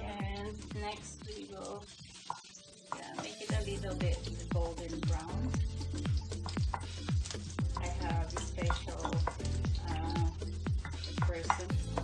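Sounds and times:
music with deep drum beat: 0.0 - 1.8, 2.9 - 12.0
food sizzling in oil: 0.0 - 12.0
wooden spatula stirring in pan: 0.0 - 12.0.

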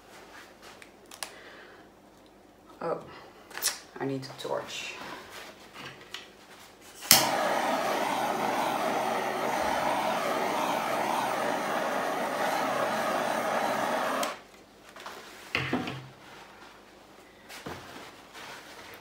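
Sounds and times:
gas torch hissing: 7.0 - 14.4
gas torch igniter click: 7.0 - 14.4.

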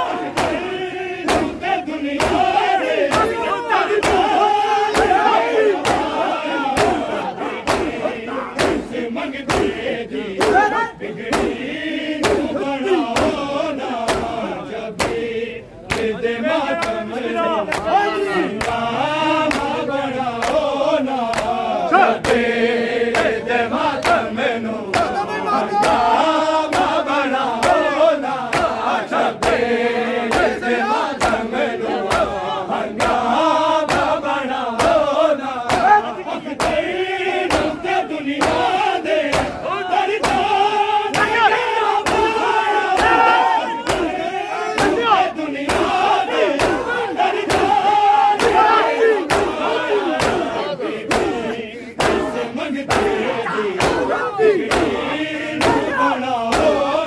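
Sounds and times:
crowd of men chanting: 0.0 - 57.0
hands beating chests: 0.2 - 14.4, 24.9 - 28.8, 34.8 - 36.9, 37.5 - 44.2, 44.8 - 56.9.

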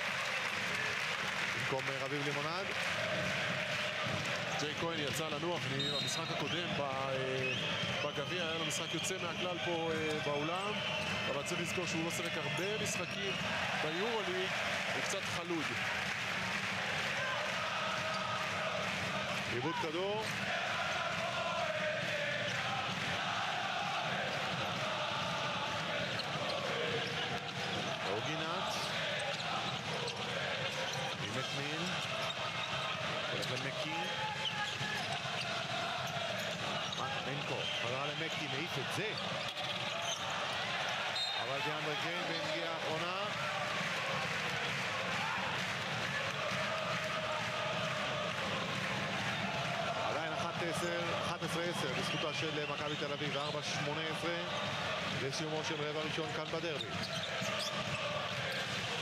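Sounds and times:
arena crowd noise: 0.0 - 59.0.

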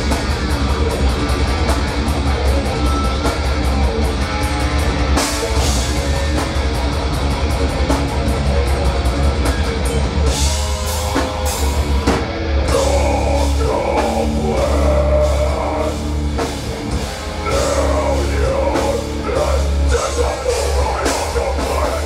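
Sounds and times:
fast drumming: 0.0 - 22.0
heavy metal band playing: 0.0 - 22.0
vocalist singing: 12.7 - 22.0.

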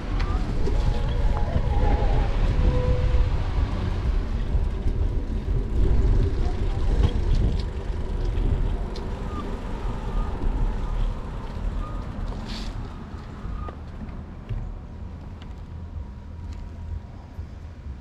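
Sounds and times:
wind rumbling on microphone: 0.0 - 18.0.

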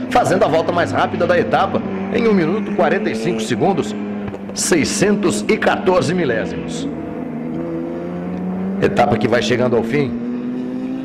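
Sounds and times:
race car engines running hard: 0.0 - 11.0.

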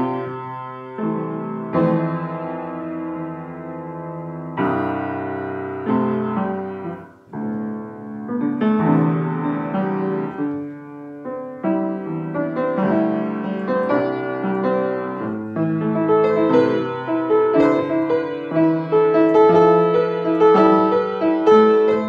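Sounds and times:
grand piano improvisation: 0.0 - 22.0.

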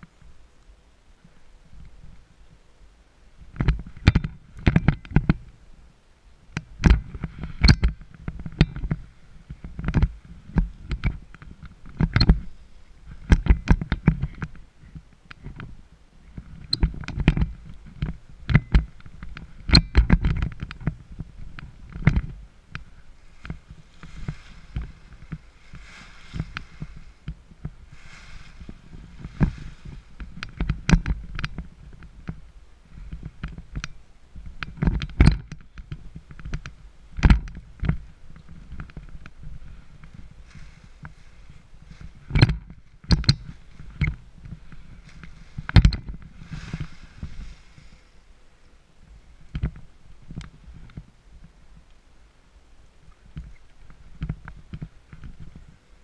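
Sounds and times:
knocks and thumps near camera: 3.5 - 5.4, 41.9 - 47.6
paraglider wing rustling: 6.4 - 51.6.

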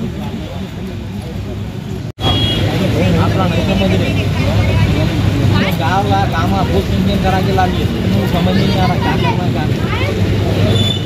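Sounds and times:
people talking: 0.0 - 10.9
traffic rumble: 0.0 - 11.0.

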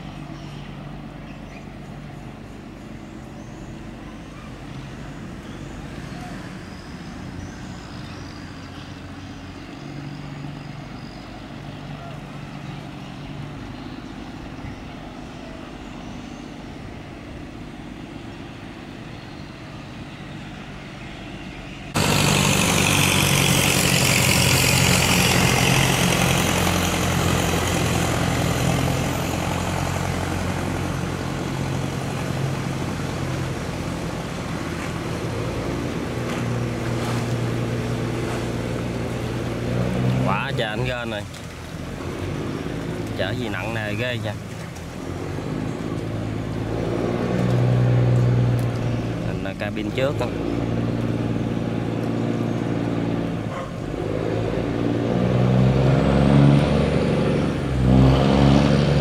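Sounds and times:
boat engines running: 0.0 - 59.0
boat wake and spray rushing: 0.0 - 59.0
motorboat engine running hard: 0.0 - 59.0.

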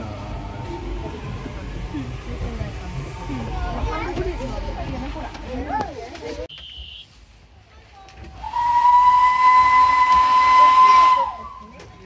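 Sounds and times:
steam hissing: 8.4 - 11.6
steam locomotive whistle: 8.4 - 11.9.

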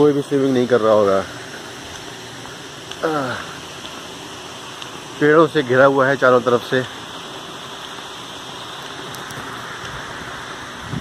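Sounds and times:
fountain splashing: 0.0 - 11.0.

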